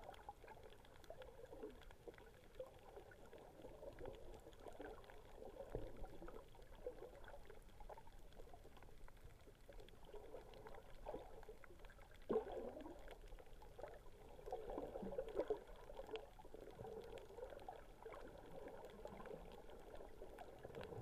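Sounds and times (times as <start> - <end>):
small clicks and crackles: 0.0 - 21.0
underwater gurgling and bubbling: 0.0 - 21.0.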